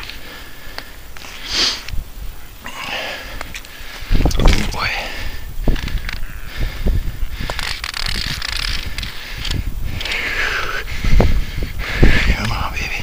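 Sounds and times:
scattered clicks: 5.7s - 6.3s, 7.4s - 10.7s.

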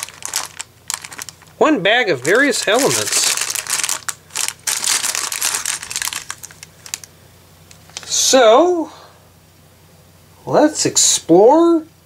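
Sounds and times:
plastic bags crinkling: 0.0s - 7.1s.

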